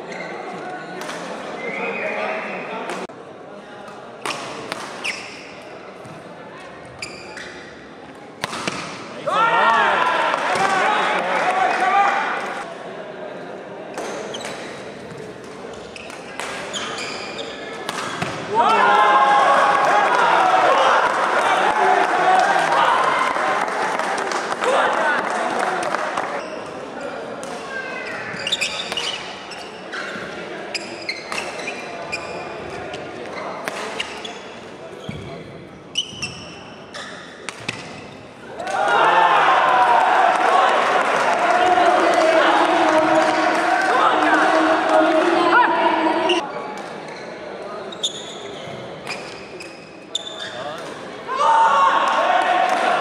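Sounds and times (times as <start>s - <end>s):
shoes squeaking on court floor: 0.0s - 0.6s, 5.0s - 6.2s, 6.8s - 7.9s, 14.0s - 18.4s, 26.4s - 27.2s, 28.0s - 38.4s, 46.2s - 50.9s
overlapping shouting voices: 18.5s - 26.1s, 38.6s - 46.4s, 51.3s - 53.0s.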